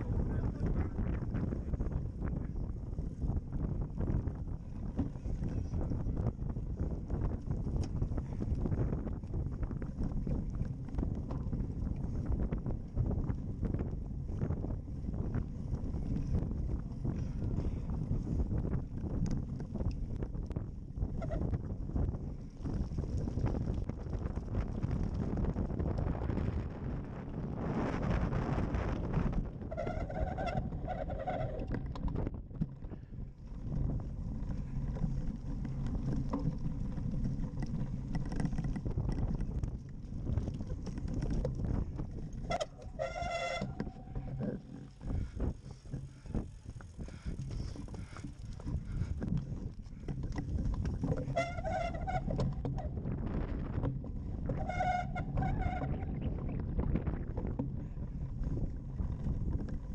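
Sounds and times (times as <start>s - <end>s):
bike rattling and knocking: 0.0s - 26.5s, 28.6s - 59.9s
wind buffeting microphone: 0.0s - 59.9s.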